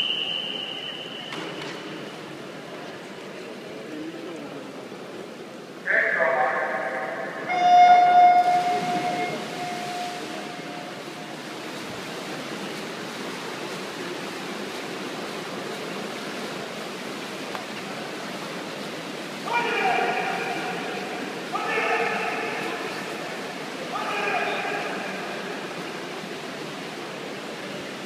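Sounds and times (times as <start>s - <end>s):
swimmers splashing: 0.0s - 2.7s, 6.1s - 28.0s
hall background noise: 0.0s - 28.0s
loudspeaker announcement: 5.8s - 11.4s, 19.4s - 25.8s.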